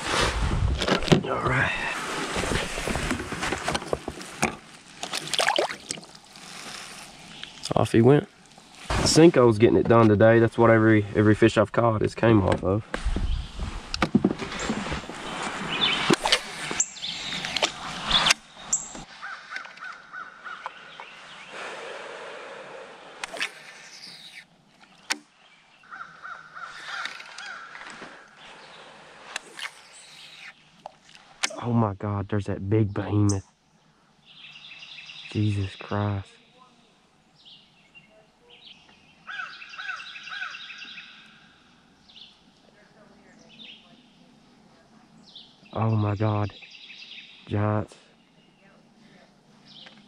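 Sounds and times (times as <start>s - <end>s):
bird calling: 14.5s - 22.0s, 23.2s - 31.6s, 33.0s - 48.8s.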